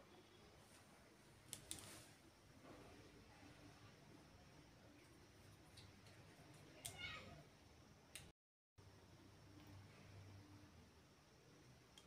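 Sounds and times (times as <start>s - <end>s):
click: 8.1s - 8.3s.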